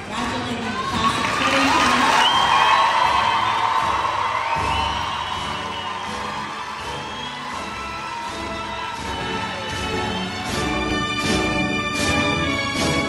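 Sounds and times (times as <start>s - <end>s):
music playing: 0.0s - 13.0s
crowd cheering and whooping: 0.6s - 10.9s.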